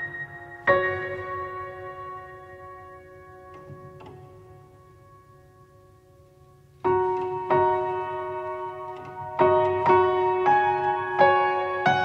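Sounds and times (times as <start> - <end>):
slow soft piano music: 0.0 - 12.0.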